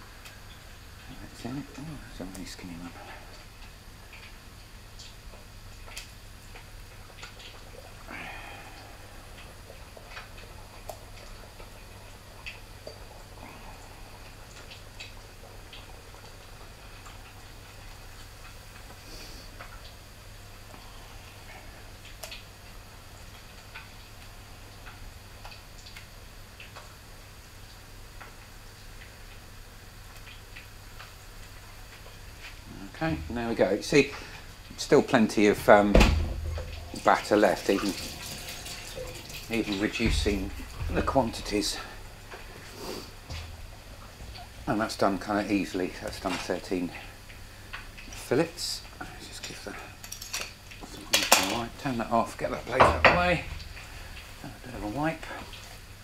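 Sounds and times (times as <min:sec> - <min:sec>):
oil crackling and popping: 0:00.0 - 0:56.0
steady low hum: 0:00.0 - 0:56.0.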